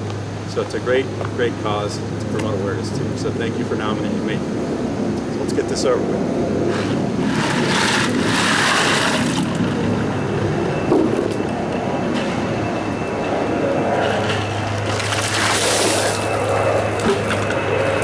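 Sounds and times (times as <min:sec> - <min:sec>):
ice water splashing: 0:07.3 - 0:09.6, 0:14.8 - 0:17.3.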